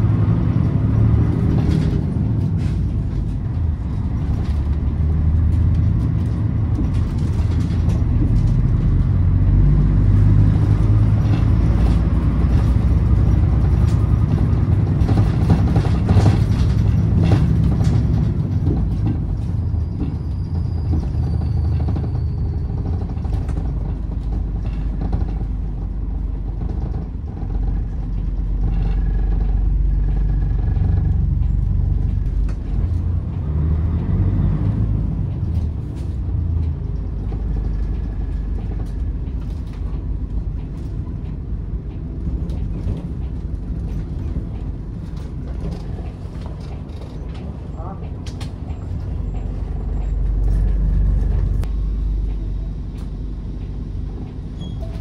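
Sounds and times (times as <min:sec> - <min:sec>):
bus engine and road rumble: 0:00.0 - 0:55.0.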